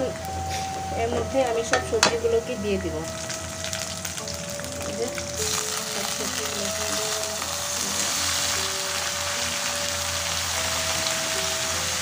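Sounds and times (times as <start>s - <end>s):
onions and spices frying in oil: 0.0s - 12.0s.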